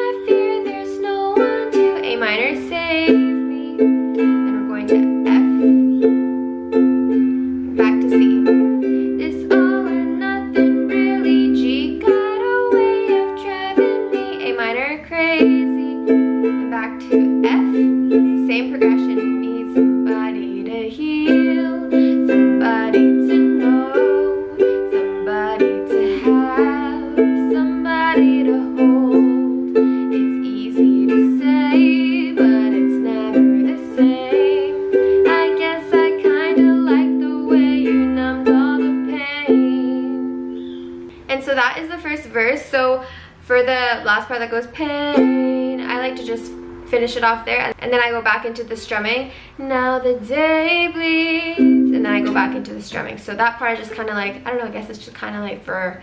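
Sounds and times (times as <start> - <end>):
woman singing softly: 0.0 - 6.1, 7.7 - 40.5, 41.2 - 54.9
ukulele strumming: 0.0 - 55.4.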